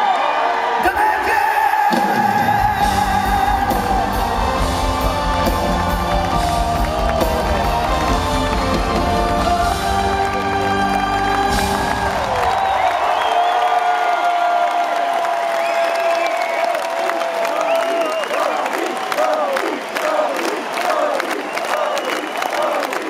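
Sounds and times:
crowd cheering and whooping: 0:00.0 - 0:23.0
live rock band playing: 0:02.2 - 0:12.7.

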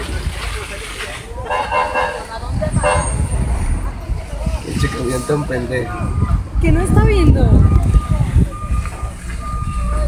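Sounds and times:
low engine-like rumble: 0:05.8 - 0:10.0.

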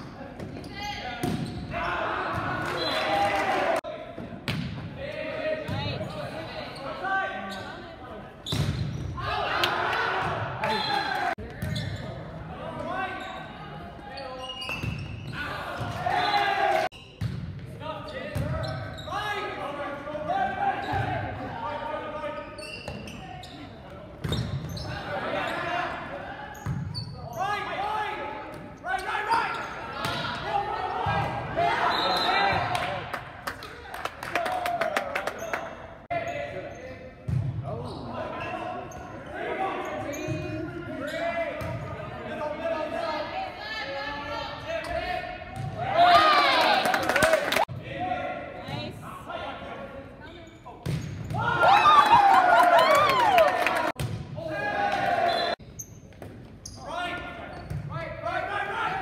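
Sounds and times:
loud high shout: 0:51.4 - 0:55.6.

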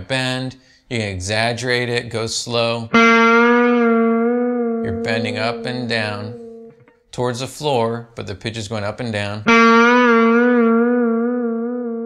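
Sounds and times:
electric guitar note with vibrato: 0:03.1 - 0:06.8.

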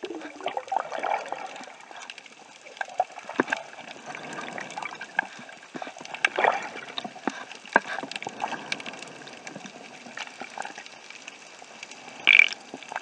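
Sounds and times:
rush of water: 0:00.0 - 0:13.0
underwater hiss with crackles: 0:00.0 - 0:13.0.

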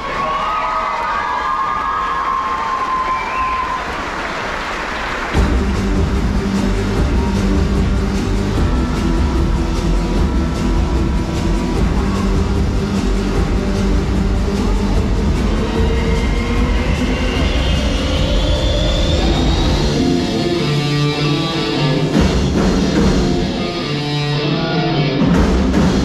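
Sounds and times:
audience cheering and whooping: 0:00.0 - 0:05.4, 0:14.4 - 0:20.6
loud music with low beat: 0:05.4 - 0:26.0.

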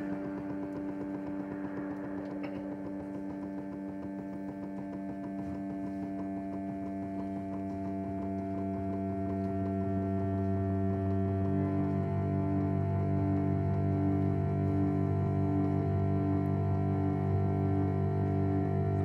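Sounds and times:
instrumental drone with bowed cello: 0:00.0 - 0:19.0.

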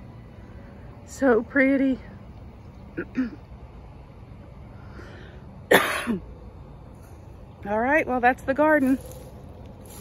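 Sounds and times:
woman clearing her throat: 0:03.0 - 0:03.4, 0:05.7 - 0:06.2
woman coughing: 0:03.0 - 0:03.4, 0:05.7 - 0:06.2.

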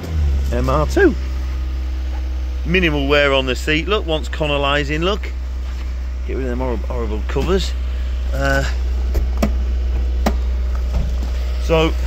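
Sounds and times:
steady low rumble: 0:00.0 - 0:12.0
clicks and knocks of car seat: 0:09.1 - 0:11.4.

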